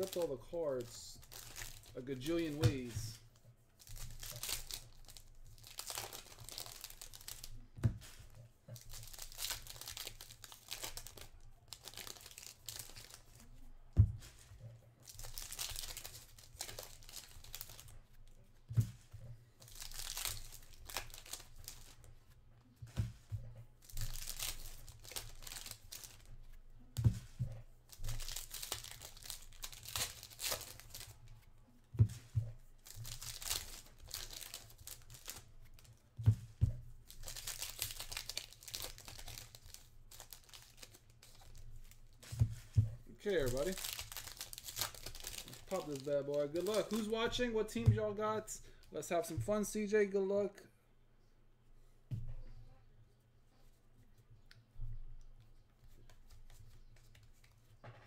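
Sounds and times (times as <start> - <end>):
card pack wrappers tearing: 0.0 - 3.0, 3.9 - 7.6, 8.9 - 13.4, 15.0 - 17.9, 19.6 - 21.9, 23.9 - 26.2, 28.0 - 31.2, 32.8 - 35.5, 37.1 - 41.6, 43.2 - 47.1.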